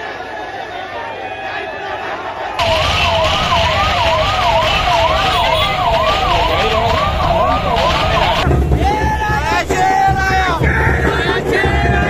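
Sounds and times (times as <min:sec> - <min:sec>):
vehicle siren yelping: 0:02.6 - 0:08.4.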